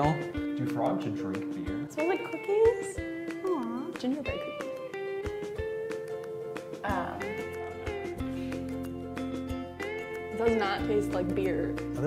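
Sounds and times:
music with plucked notes: 0.0 - 12.0.

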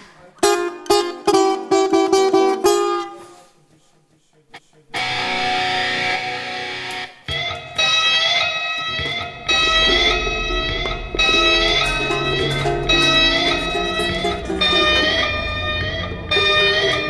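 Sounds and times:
mandolin plucked: 0.4 - 3.2, 8.8 - 16.0
electric guitar sustained notes: 7.8 - 17.0.

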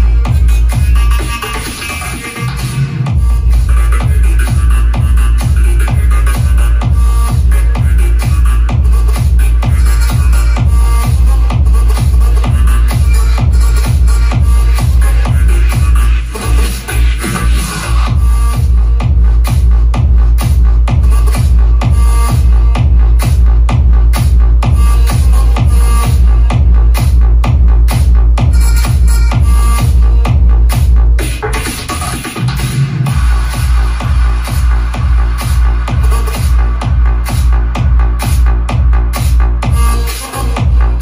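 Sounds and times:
heavy kick drum pounding: 0.0 - 16.6, 17.2 - 41.0
electronic dance music: 0.0 - 41.0.

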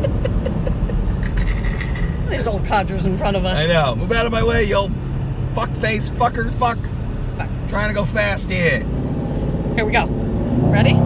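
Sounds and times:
rapid laughter: 0.0 - 2.2
car engine rumble: 0.0 - 11.0
road noise: 0.0 - 11.0.

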